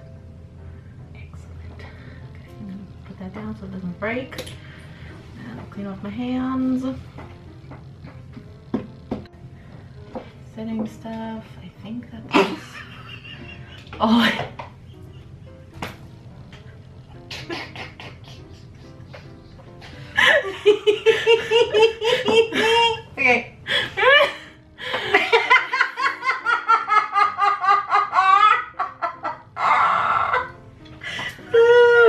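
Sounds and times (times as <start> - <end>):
women laughing: 12.3 - 14.4, 17.3 - 23.1, 23.7 - 30.5.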